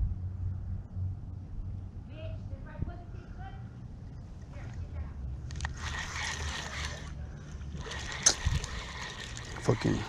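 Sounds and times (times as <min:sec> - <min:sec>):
wind rumble on microphone: 0:00.0 - 0:05.2
fishing reel whirring: 0:05.5 - 0:10.0
reel click: 0:07.7 - 0:10.0.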